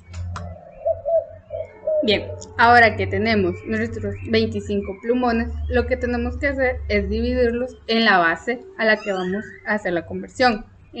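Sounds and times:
bird cooing: 0.4s - 5.7s.

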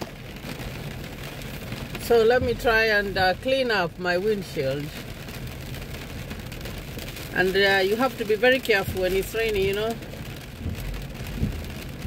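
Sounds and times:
rain on car glass and body: 0.0s - 12.0s.

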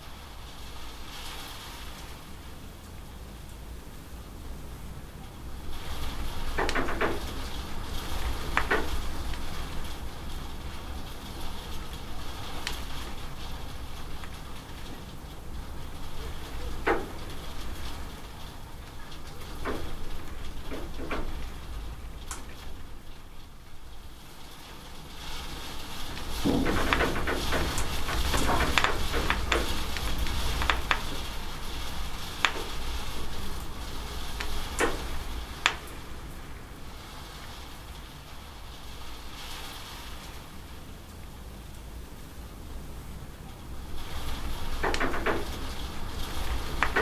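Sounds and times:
rain hissing: 0.0s - 47.0s.

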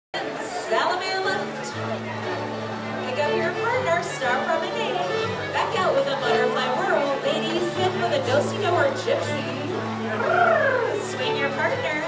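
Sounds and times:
crowd chattering in a hall: 0.2s - 12.0s
band playing low held notes: 1.4s - 12.0s.

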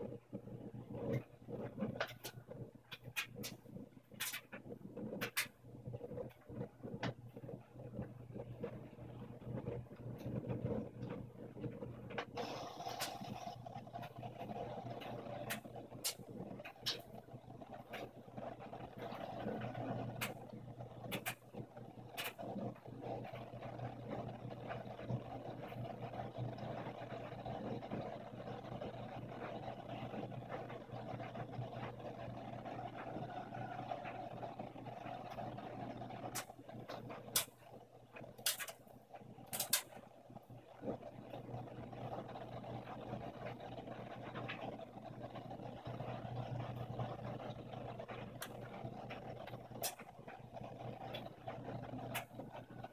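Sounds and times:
washing machine drum motor hum: 0.0s - 52.9s.

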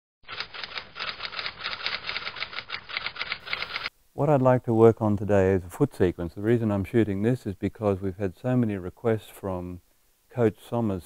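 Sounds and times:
speech: 4.2s - 11.0s.

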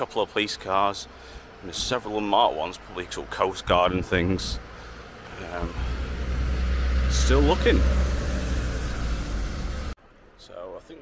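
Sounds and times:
van passing close by: 1.6s - 10.0s.

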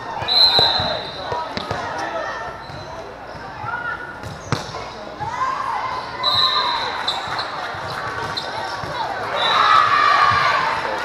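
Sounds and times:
referee's whistle: 0.2s - 1.5s, 6.2s - 7.5s, 9.3s - 9.9s.

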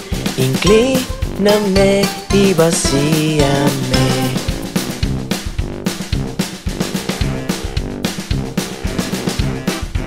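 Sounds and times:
person singing: 0.0s - 5.0s
drum-kit beat: 0.0s - 10.0s
upbeat children's song music: 0.0s - 10.0s.

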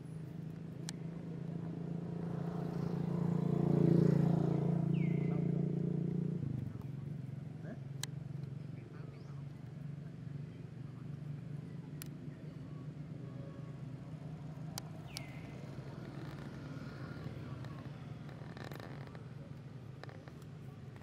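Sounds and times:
vehicle engine passing by: 1.0s - 21.0s.

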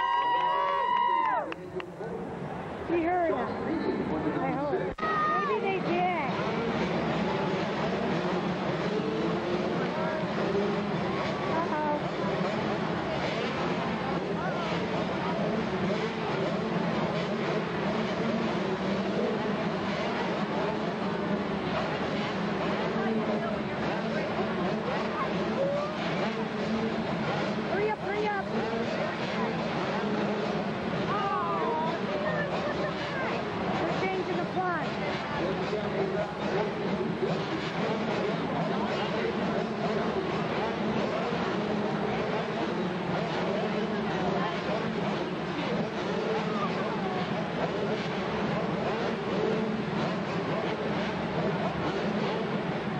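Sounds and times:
crowd chatter: 0.0s - 52.9s
motocross bike engines droning: 0.0s - 52.9s.

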